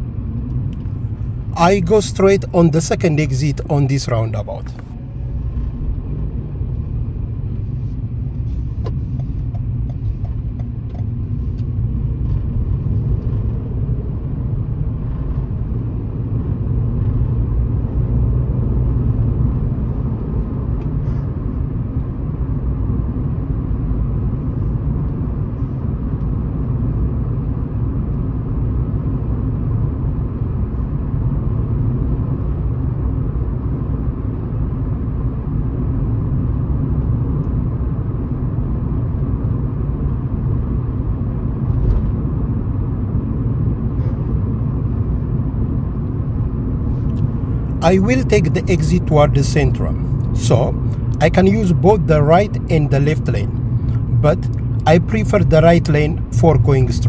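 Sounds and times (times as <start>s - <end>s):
car engine and tyres rumbling: 0.0s - 57.0s.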